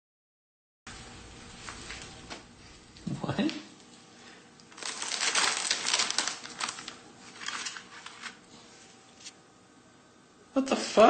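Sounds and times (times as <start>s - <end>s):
plastic wrapper rustling: 4.6s - 8.5s.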